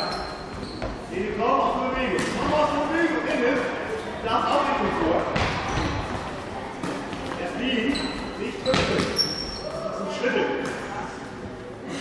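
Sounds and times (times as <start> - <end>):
voices in echoing hall: 0.0 - 12.0
ball bouncing on court floor: 8.6 - 9.4.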